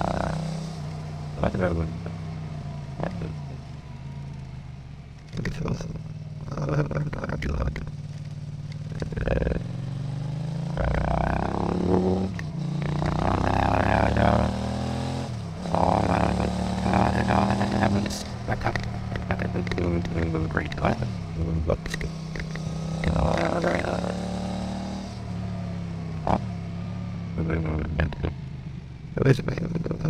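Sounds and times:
processed motorcycle engine revving: 0.0s - 30.0s.

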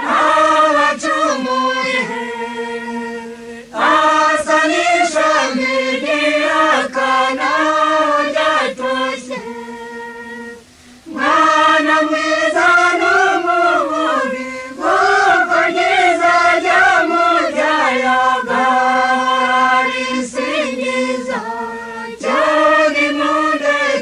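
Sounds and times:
choir singing: 0.0s - 24.0s.

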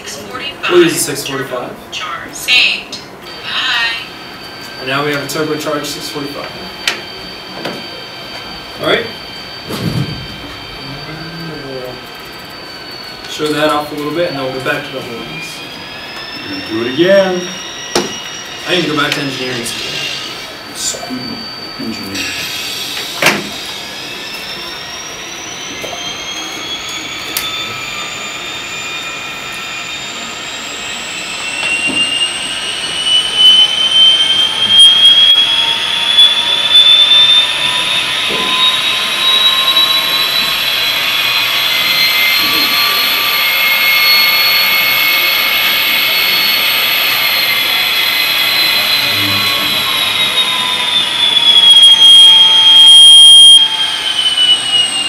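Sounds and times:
turbocharger whine rising in pitch: 0.0s - 55.0s.

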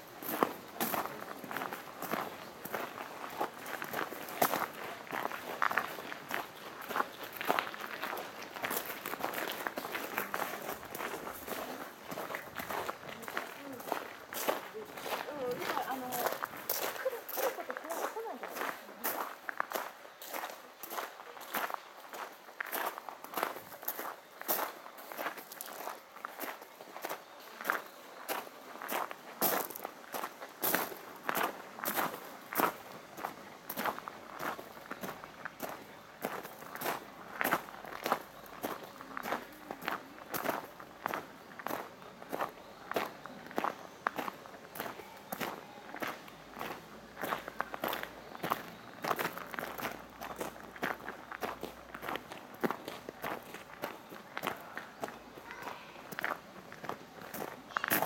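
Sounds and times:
footsteps crunching on gravel: 0.2s - 58.0s.

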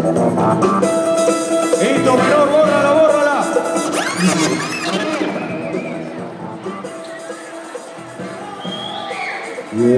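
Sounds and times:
crowd noise in a hall: 0.0s - 9.9s.

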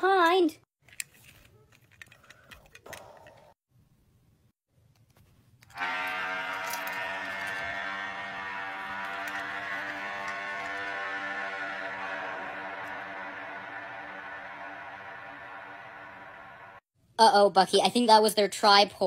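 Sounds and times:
horn blast: 5.7s - 16.8s.

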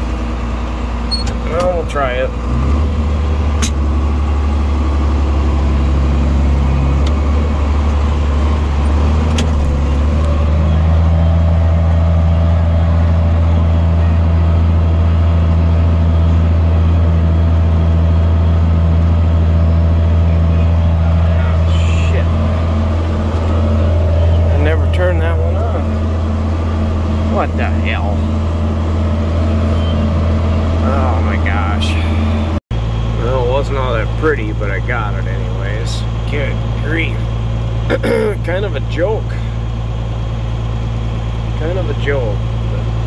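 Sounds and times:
tractor diesel engine droning: 0.0s - 43.0s.

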